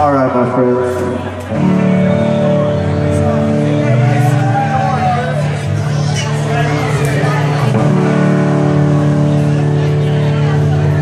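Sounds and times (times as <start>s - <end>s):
electric guitar droning chord: 1.5s - 11.0s.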